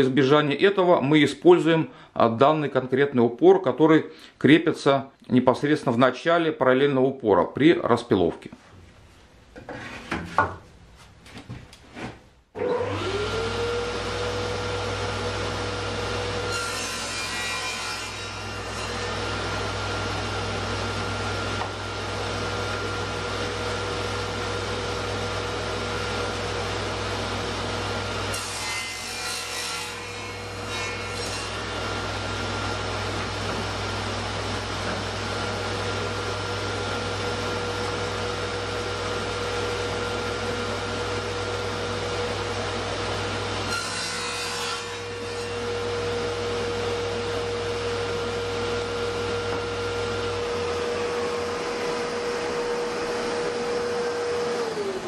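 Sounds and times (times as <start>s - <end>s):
saw cutting through plywood: 12.6s - 27.1s, 28.1s - 55.0s
table saw whining: 12.6s - 55.0s.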